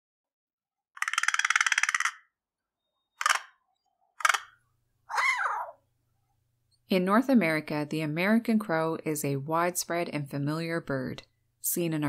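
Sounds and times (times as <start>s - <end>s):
crow rattle call: 1.0s - 2.3s, 3.2s - 3.5s, 4.2s - 5.8s
crow cawing: 4.2s - 5.8s.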